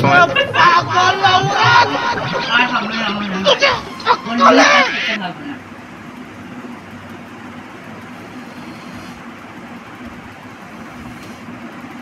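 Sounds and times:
steady background hum: 0.0s - 12.0s
hiss: 8.2s - 9.4s, 10.6s - 11.7s.

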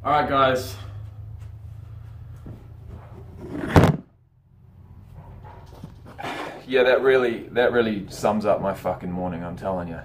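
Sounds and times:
camera falling with a thud: 3.4s - 4.1s.

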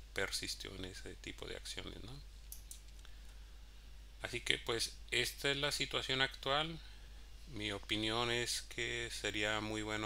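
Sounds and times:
faint low hum: 0.0s - 10.0s
computer mouse clicks: 2.5s - 3.1s.

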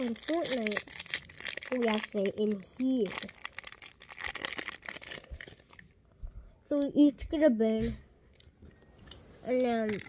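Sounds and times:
plastic wrapper crinkling: 0.0s - 6.0s, 9.0s - 10.0s.

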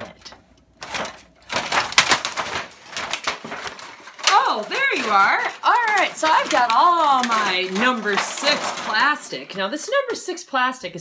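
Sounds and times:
plastic containers crinkling: 0.0s - 10.4s.

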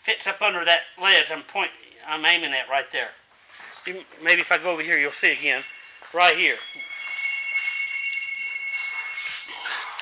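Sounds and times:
high-pitched two-tone whine: 4.8s - 10.0s.

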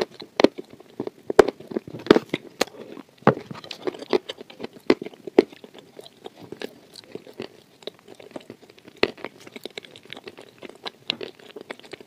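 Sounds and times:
close chewing with wet mouth clicks: 0.0s - 12.0s.

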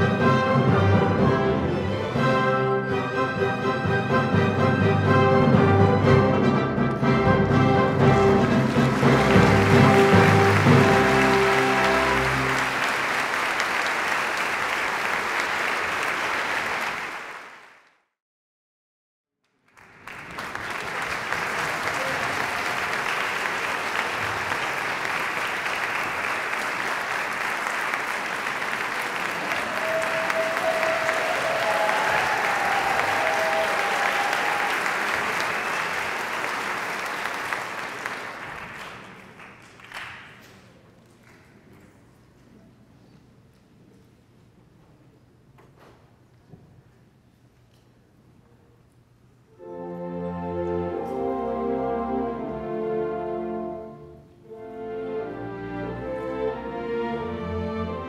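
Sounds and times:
orchestra final chord: 5.1s - 13.0s
audience applauding: 7.9s - 17.9s, 19.6s - 41.5s.

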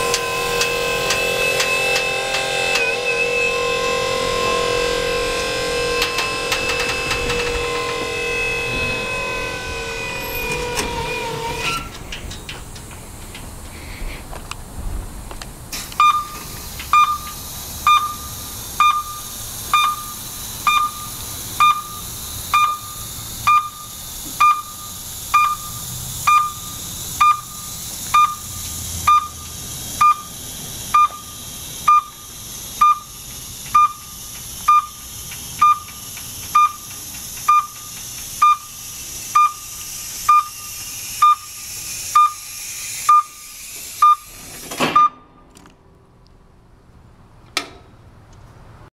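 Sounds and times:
steady hiss: 6.8s - 44.8s
short high alarm beeps: 16.0s - 33.2s, 33.8s - 35.0s, 35.6s - 36.0s, 36.6s - 36.9s, 37.5s - 38.8s, 39.4s - 41.6s, 42.2s - 42.5s, 43.1s - 44.3s.

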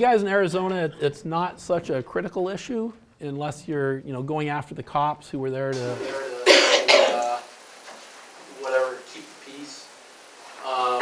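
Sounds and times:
person coughing: 6.4s - 7.4s.

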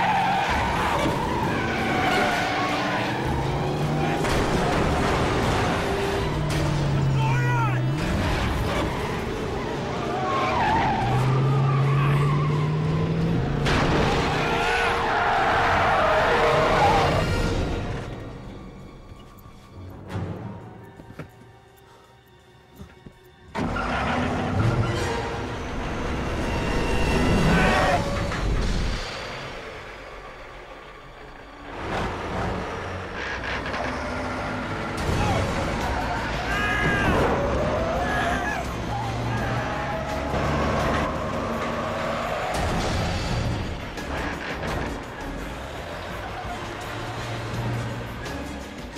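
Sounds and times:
car tyres squealing: 0.0s - 18.1s, 23.5s - 28.6s, 32.8s - 48.4s
engine and road noise: 0.0s - 48.9s.

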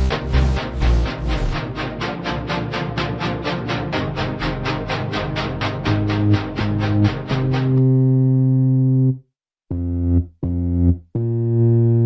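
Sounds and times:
synthesizer chord: 0.0s - 12.0s.

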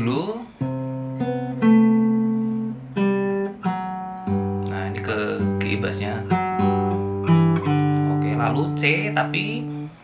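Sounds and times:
nylon-string guitar fingerstyle: 0.0s - 10.0s.

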